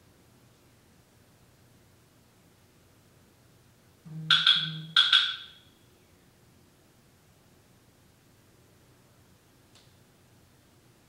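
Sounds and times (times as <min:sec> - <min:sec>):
bright phone chime: 0:04.1 - 0:05.6
phone vibrating on wooden floor: 0:04.1 - 0:05.6.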